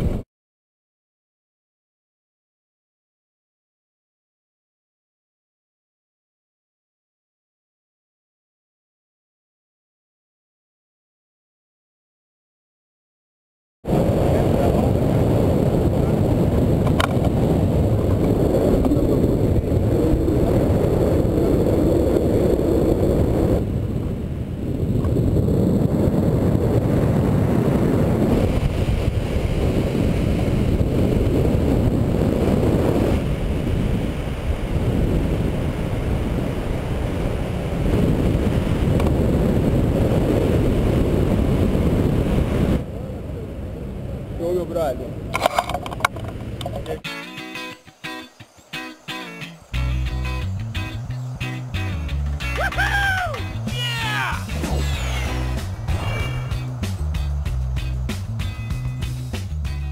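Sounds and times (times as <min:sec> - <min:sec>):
wind buffeting microphone: 0:13.9 - 0:47.1, 0:47.9 - 0:59.9.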